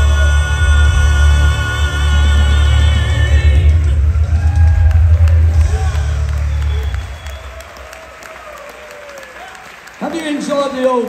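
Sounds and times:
band accompaniment: 0:00.0 - 0:08.2
audience applauding: 0:03.5 - 0:11.0.

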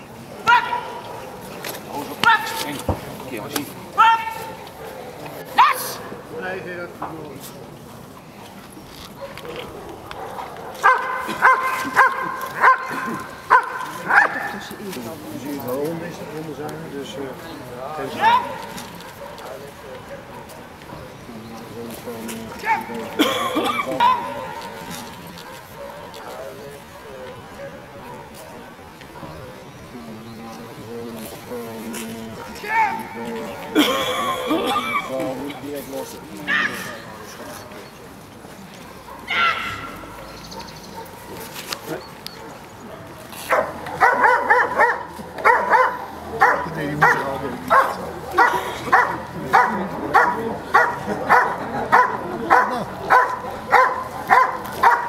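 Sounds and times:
dog barking sharply: 0:10.2 - 0:14.6, 0:24.0 - 0:24.7, 0:43.4 - 0:55.0.

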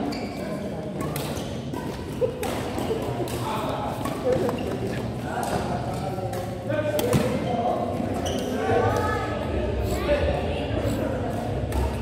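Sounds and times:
voices chattering in a hall: 0:00.0 - 0:12.0
rackets striking shuttlecock: 0:01.0 - 0:04.8.

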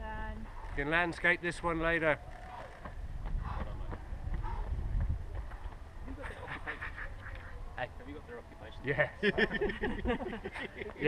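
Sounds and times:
wind rumble on microphone: 0:02.0 - 0:07.8.

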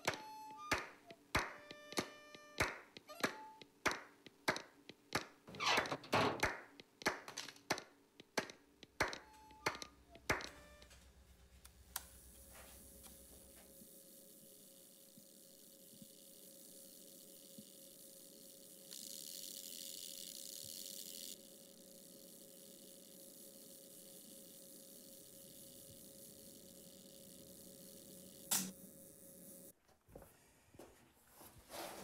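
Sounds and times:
faint steady hum: 0:07.8 - 0:31.5
soft hiss: 0:09.4 - 0:29.7
sharp click: 0:28.4 - 0:28.8.

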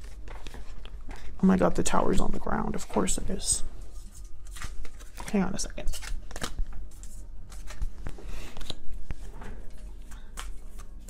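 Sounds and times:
cards being shuffled: 0:00.0 - 0:01.3, 0:03.9 - 0:11.0.

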